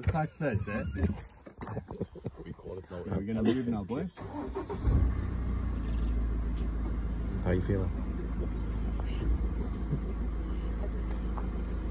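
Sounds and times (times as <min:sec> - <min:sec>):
vehicle engine starting and idling: 0:02.7 - 0:11.9.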